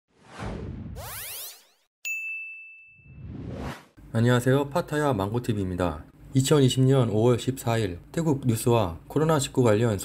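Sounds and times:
whoosh with rising sweep: 0.1 - 1.8, 3.1 - 4.0
bright ringing ding: 2.0 - 3.2.

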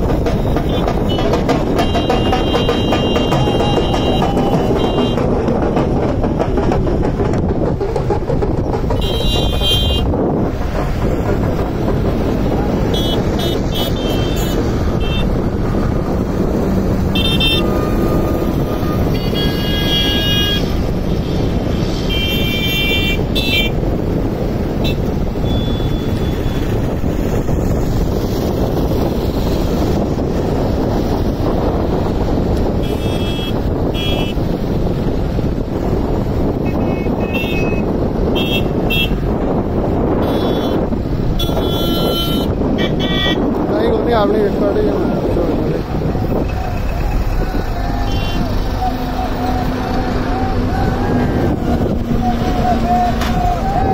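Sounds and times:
road traffic din: 0.0 - 53.9
vehicle horns honking: 0.4 - 5.3, 9.0 - 10.1, 12.8 - 15.4, 17.1 - 21.2, 22.0 - 23.8, 24.8 - 26.8, 32.8 - 34.5, 36.6 - 39.3, 40.2 - 43.5, 47.9 - 49.8.

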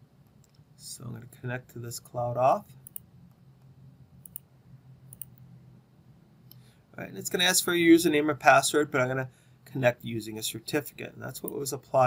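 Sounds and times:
low steady hum: 0.0 - 12.0
faint computer mouse clicks: 4.2 - 4.5, 5.1 - 5.4.

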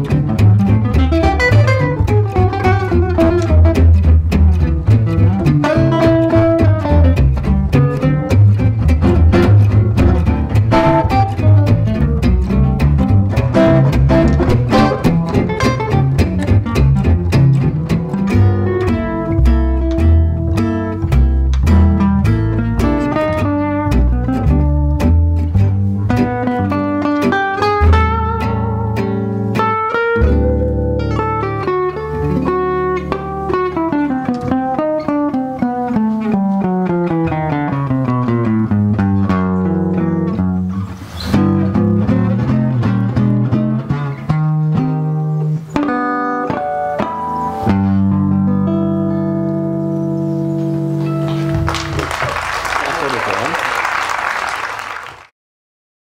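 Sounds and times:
acoustic guitars playing gypsy swing: 0.0 - 52.4
plucked double bass: 0.0 - 53.2
applause: 51.0 - 55.3.

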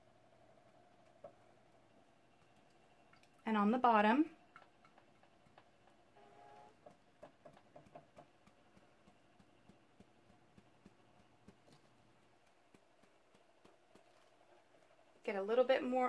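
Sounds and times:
sponge dauber tapping: 6.8 - 15.0.

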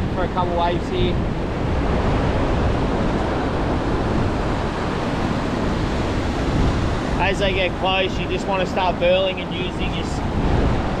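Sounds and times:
ocean surf breaking: 0.0 - 11.0
wind rumbling on microphone: 0.0 - 11.0.

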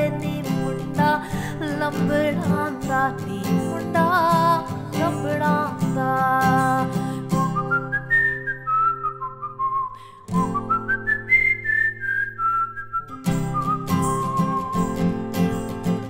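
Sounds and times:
acoustic guitar strumming: 0.0 - 16.0
woman whistling a melody: 5.8 - 15.8.

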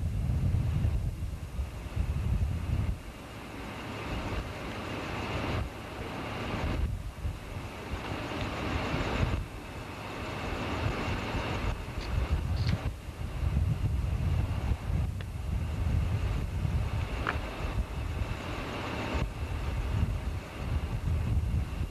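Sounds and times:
diesel locomotive working: 0.0 - 21.9
wind buffeting microphone: 0.0 - 21.9.

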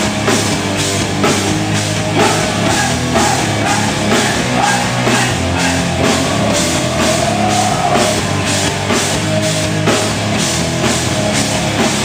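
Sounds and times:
drum kit beat: 0.0 - 12.0
electric guitars: 0.0 - 12.0.

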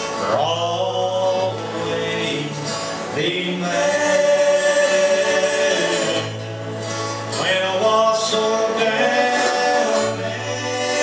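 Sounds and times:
acoustic guitars: 0.0 - 11.0
vocal trio singing in harmony: 0.2 - 6.6, 7.4 - 11.0.

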